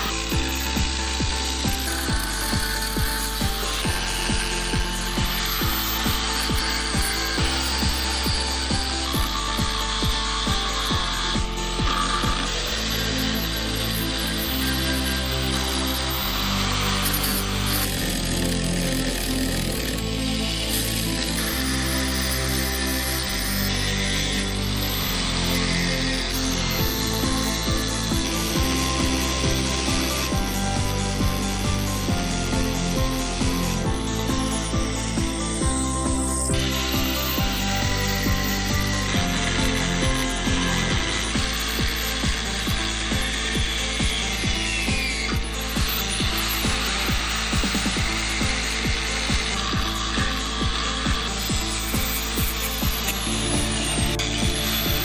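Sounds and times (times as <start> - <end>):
angle grinder cutting steel: 0.0 - 55.0
background music with bass line: 0.0 - 55.0.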